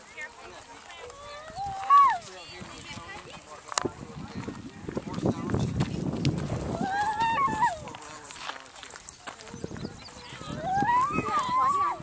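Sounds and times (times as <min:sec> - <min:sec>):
low indistinct talk: 0:00.0 - 0:12.0
child calling out: 0:10.5 - 0:12.0.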